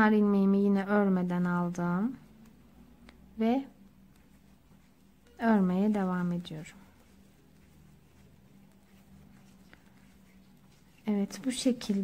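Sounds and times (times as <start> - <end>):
faint room hum: 0.0 - 12.0.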